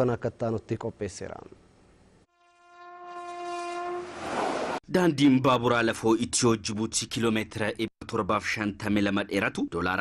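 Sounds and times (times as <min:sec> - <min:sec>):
train horn: 0:02.3 - 0:04.2.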